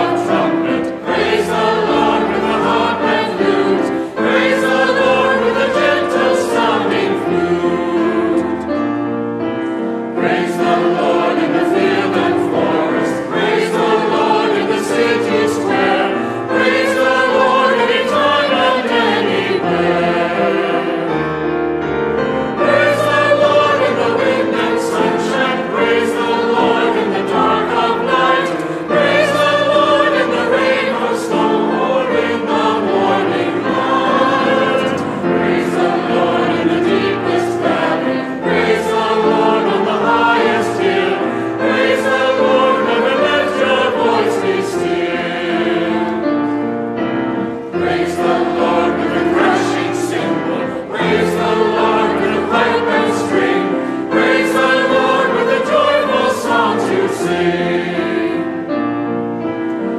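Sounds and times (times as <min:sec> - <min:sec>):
congregation singing a hymn: 0:00.0 - 0:59.9.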